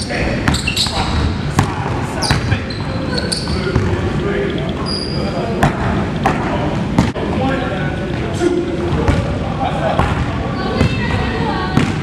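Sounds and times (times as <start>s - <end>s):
sneaker squeaks: 0.0s - 1.4s, 2.1s - 5.6s
voices murmuring: 0.0s - 12.0s.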